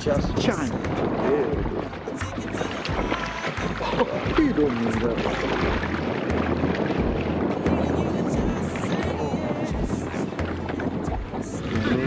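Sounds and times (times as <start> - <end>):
background music: 0.0 - 12.0
water splashing against boat hull: 0.0 - 12.0
wind rumbling on microphone: 0.0 - 12.0.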